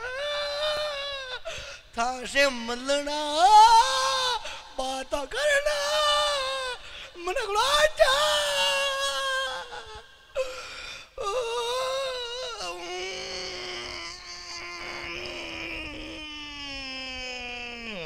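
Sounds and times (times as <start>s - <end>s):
person wailing: 11.2s - 18.0s.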